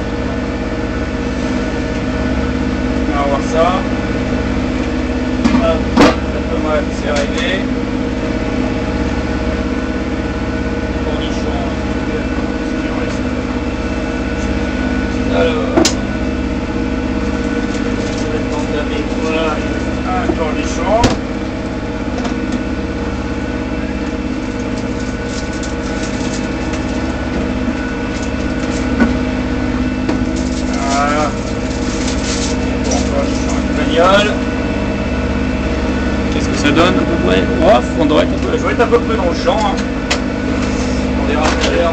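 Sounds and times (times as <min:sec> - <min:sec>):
boat diesel engine droning: 0:00.0 - 0:41.9.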